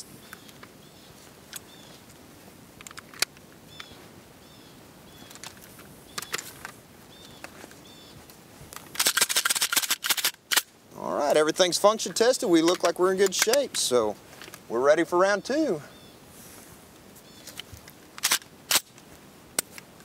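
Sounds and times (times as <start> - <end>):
rifle metallic clicks: 8.8 - 10.7, 12.7 - 13.8, 17.6 - 19.0.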